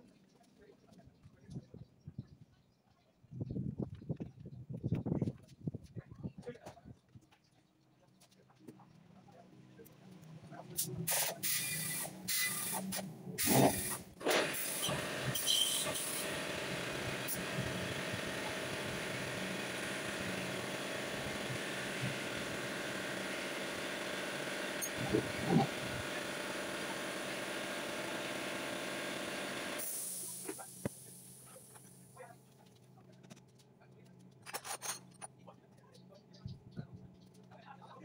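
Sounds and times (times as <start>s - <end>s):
pneumatic air tool running: 10.8s - 32.0s.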